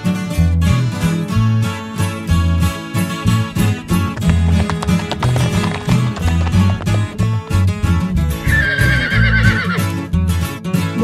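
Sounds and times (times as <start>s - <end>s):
instrumental music with bass line: 0.0s - 11.0s
hooves clip-clopping: 3.0s - 10.0s
horse whinnying: 8.4s - 10.0s.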